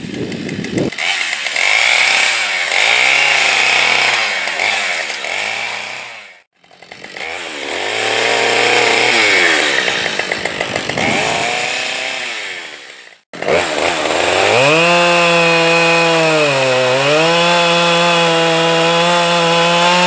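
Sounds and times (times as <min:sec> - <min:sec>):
chainsaw running at high revs: 0:00.0 - 0:20.0.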